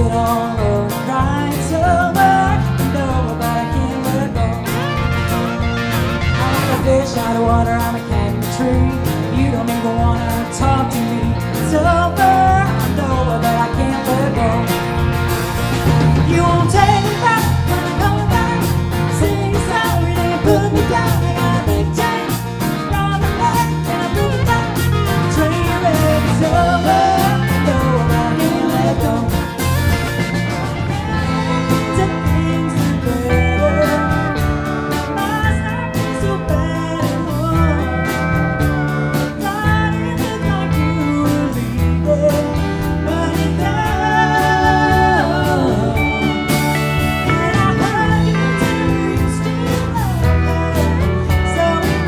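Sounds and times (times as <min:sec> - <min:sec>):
woman singing: 0:00.0 - 0:05.0, 0:06.4 - 0:15.1, 0:16.2 - 0:29.7, 0:30.8 - 0:38.5, 0:39.3 - 0:52.0
live country band playing: 0:00.0 - 0:52.0
pedal steel guitar: 0:00.0 - 0:52.0.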